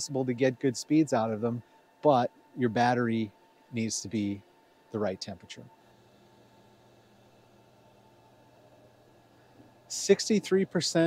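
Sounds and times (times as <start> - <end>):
faint low hum: 0.0 - 11.0
soft background hiss: 0.0 - 11.0.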